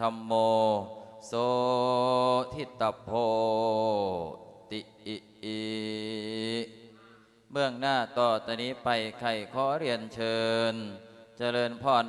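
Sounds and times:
man chanting in held notes: 0:00.0 - 0:12.0.

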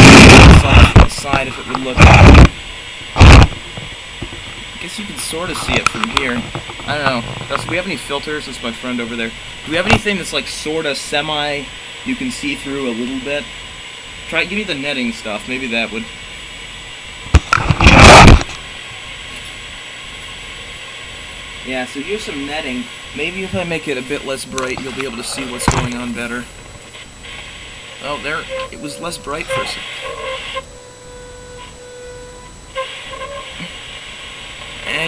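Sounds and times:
steady electronic buzz: 0:00.0 - 0:35.0
steady low hiss: 0:00.0 - 0:35.0
band of hiss: 0:21.6 - 0:30.7.

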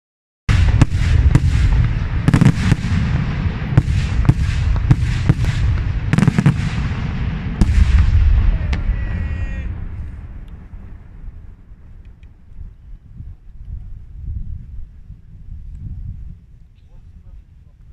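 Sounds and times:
fireworks bursts and bangs: 0:00.5 - 0:12.0.

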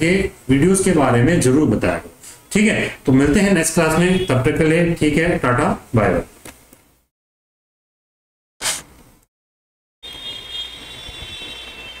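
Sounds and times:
high-pitched whine: 0:10.0 - 0:12.0.

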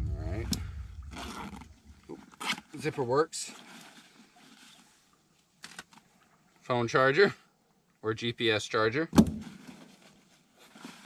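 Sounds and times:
faint rustling and handling: 0:01.1 - 0:06.7, 0:09.4 - 0:11.0
brushing rustle: 0:09.5 - 0:11.0.

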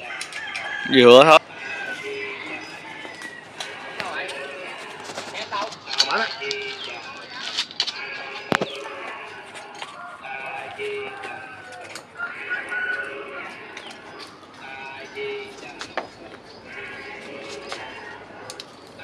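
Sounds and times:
chickens clucking: 0:00.0 - 0:19.0.

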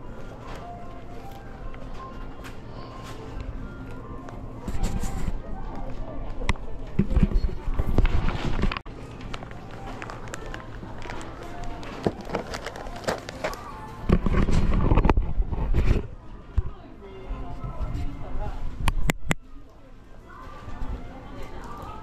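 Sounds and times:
background music: 0:00.0 - 0:06.9, 0:08.9 - 0:14.2
indistinct voices of shoppers: 0:00.0 - 0:22.0.

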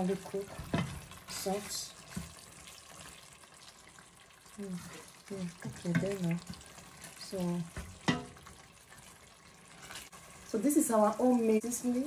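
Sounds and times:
spoon stirring stew in a pot: 0:00.4 - 0:04.1, 0:04.8 - 0:10.5.

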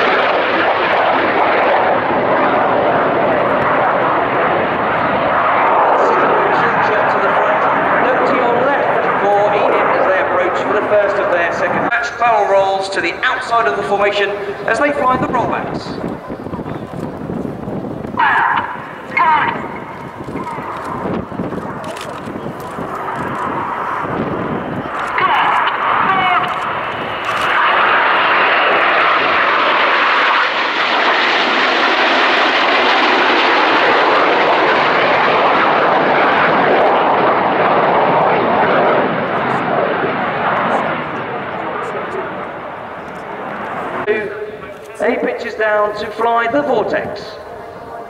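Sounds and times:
jets flying past: 0:00.0 - 0:48.0.

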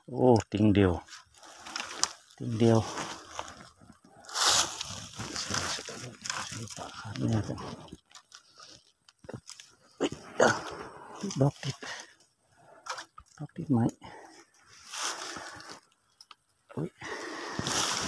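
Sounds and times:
dry twigs and brush rustling: 0:01.0 - 0:13.4, 0:14.2 - 0:18.0
twigs snapping and crackling: 0:01.4 - 0:09.8, 0:15.4 - 0:16.5.

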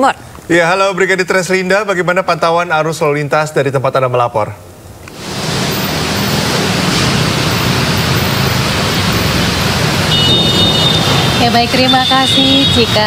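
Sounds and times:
dense road traffic: 0:04.6 - 0:13.0.

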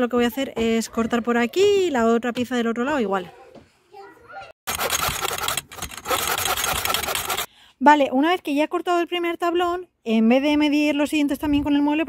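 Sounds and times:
hand saw cutting wood: 0:04.7 - 0:07.5.

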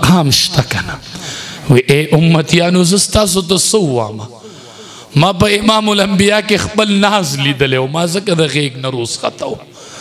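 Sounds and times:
man preaching through a microphone: 0:00.0 - 0:10.0.

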